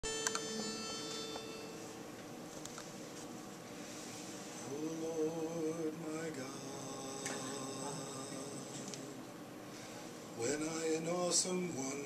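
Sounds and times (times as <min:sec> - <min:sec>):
pitch pipe note: 0:00.0 - 0:02.0.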